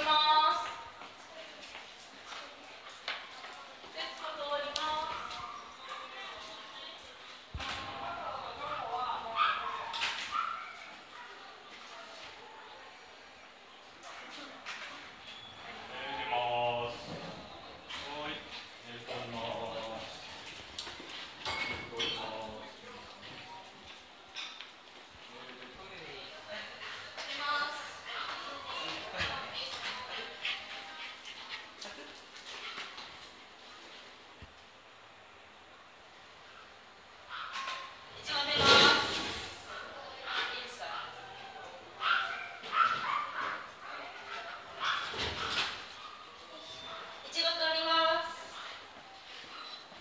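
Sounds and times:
woman talking: 0.0 - 0.9, 3.9 - 9.7, 26.2 - 31.2, 38.2 - 41.3, 47.2 - 48.7.

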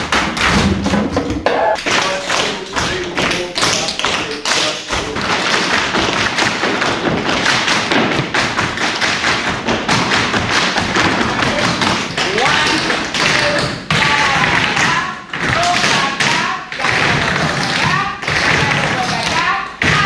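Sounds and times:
tap shoes on studio floor: 0.0 - 20.0.

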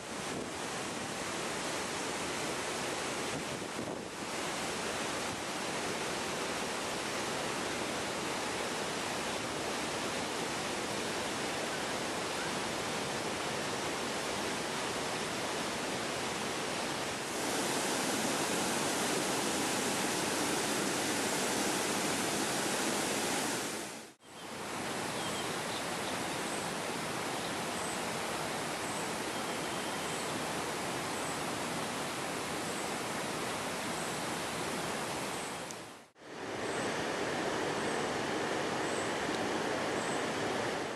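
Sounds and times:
river rushing over boulders: 0.0 - 25.1, 25.8 - 40.9
waterfall rushing: 4.1 - 24.2.

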